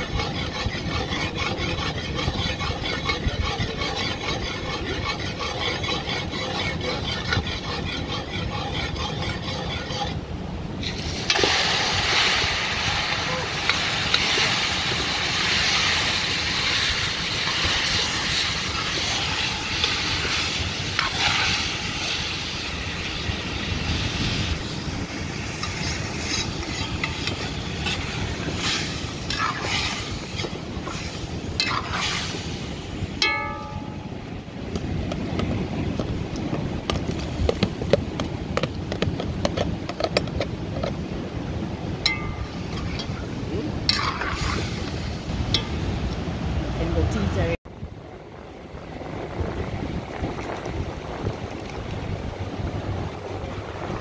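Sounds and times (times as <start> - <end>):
metal spoon scraping a pot: 0.0 - 10.2, 10.8 - 23.1, 25.4 - 32.5, 42.0 - 43.2, 43.8 - 45.8
food sizzling in a pot: 10.8 - 32.9.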